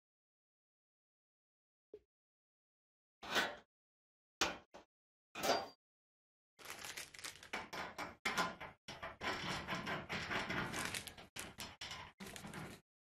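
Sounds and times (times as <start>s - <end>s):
plastic bag rustling: 6.6s - 7.5s, 10.8s - 11.2s.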